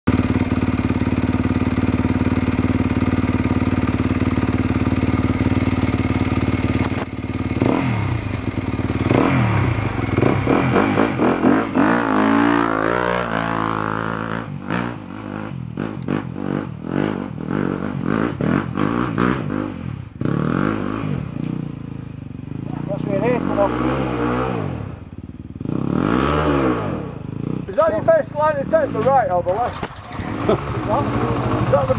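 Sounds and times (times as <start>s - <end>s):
motorcycle engine idling: 0.1s - 12.6s, 14.4s - 23.7s, 24.7s - 26.0s, 27.1s - 31.9s
motorcycle engine revving: 0.1s - 31.9s.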